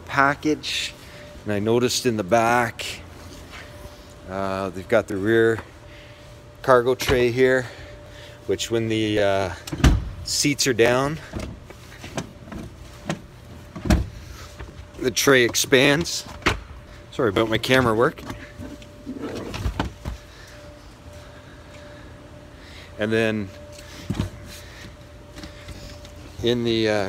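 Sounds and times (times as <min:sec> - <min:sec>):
faint steady hum: 0:00.0 - 0:27.0
seat folding down thump: 0:09.7 - 0:10.2, 0:11.3 - 0:14.3.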